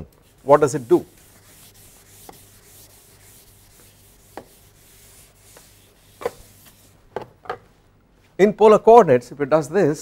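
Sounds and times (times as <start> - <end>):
eraser rubbing on chalkboard: 0.2 - 7.0.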